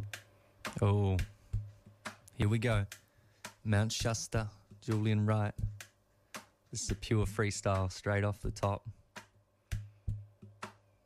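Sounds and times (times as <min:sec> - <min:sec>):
instrumental music: 0:00.0 - 0:11.0.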